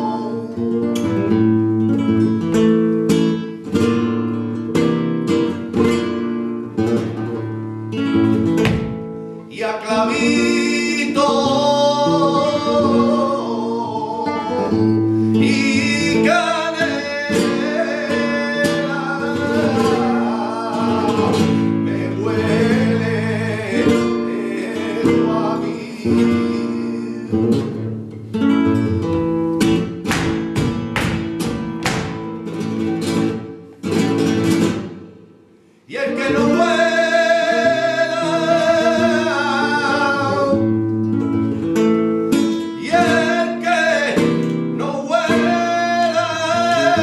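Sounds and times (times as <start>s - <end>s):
man singing held vocal lines: 0.0s - 1.1s, 9.5s - 27.9s, 35.9s - 40.8s, 42.6s - 47.0s
acoustic guitar: 0.0s - 47.0s.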